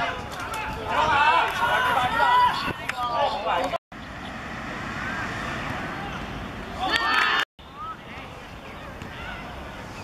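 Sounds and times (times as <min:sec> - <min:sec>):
steady outdoor hiss: 0:00.2 - 0:10.0
people shouting excitedly: 0:00.8 - 0:03.6, 0:06.8 - 0:07.4.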